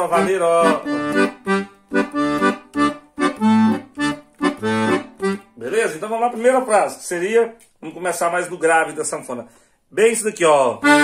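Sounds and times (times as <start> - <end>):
accordion bass and chords: 0.0 - 7.1, 10.4 - 11.0.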